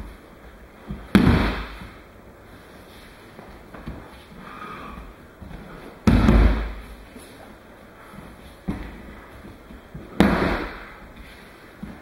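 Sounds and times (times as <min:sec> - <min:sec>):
body thudding on mat: 0:00.9 - 0:02.0, 0:05.5 - 0:06.9, 0:10.0 - 0:11.0.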